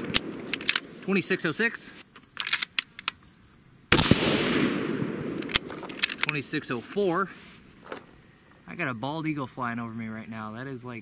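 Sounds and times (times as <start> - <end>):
rifle shot with echo: 0.0 - 1.0, 3.9 - 6.0.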